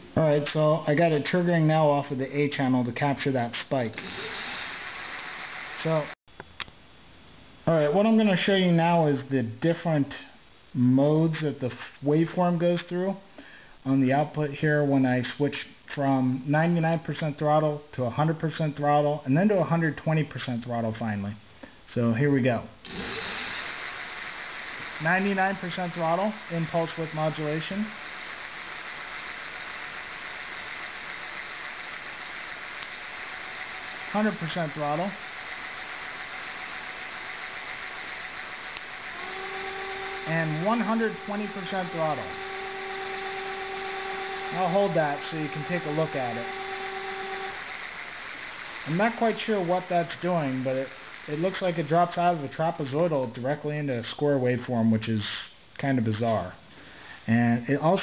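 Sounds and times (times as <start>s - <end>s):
steady high hiss: 0.0s - 58.0s
man speaking: 0.1s - 4.0s, 5.8s - 6.2s, 25.0s - 28.0s, 34.1s - 35.2s, 40.2s - 42.4s, 44.5s - 46.5s, 48.9s - 56.6s, 57.3s - 58.0s
electric motor spinning wheel: 3.9s - 6.2s, 22.8s - 52.8s.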